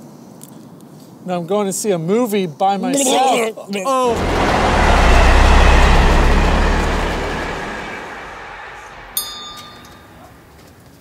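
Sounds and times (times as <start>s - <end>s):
train passing rumble: 3.9s - 11.0s
high-pitched squeal: 4.0s - 10.9s.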